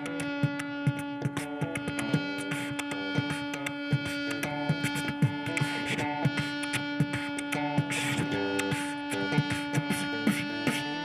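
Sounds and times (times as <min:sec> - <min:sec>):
electric guitar: 0:00.0 - 0:11.0
harmonica long note: 0:00.0 - 0:11.0
vocal percussion into microphone: 0:00.0 - 0:11.0.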